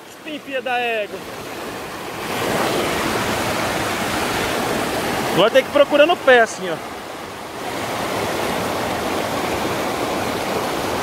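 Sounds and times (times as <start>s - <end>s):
waterfall rushing: 0.0s - 11.0s.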